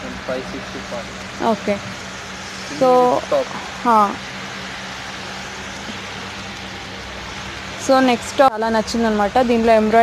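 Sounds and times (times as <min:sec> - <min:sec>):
spoken word: 0:00.0 - 0:01.1
constant low hum: 0:00.0 - 0:10.0.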